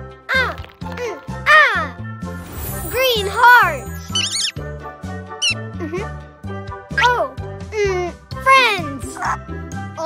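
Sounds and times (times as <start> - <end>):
gentle background music: 0.0 - 10.0
cartoon bunny squeaky chirps: 3.8 - 4.6, 5.4 - 5.6.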